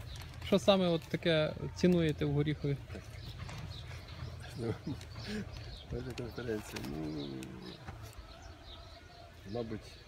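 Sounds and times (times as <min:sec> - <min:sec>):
man murmuring quietly: 0:04.4 - 0:10.0.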